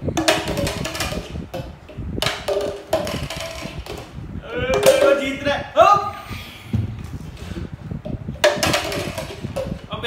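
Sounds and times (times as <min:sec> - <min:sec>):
plastic cups knocking on wood: 0:00.1 - 0:05.3, 0:08.0 - 0:09.9
person crying out: 0:04.4 - 0:05.2.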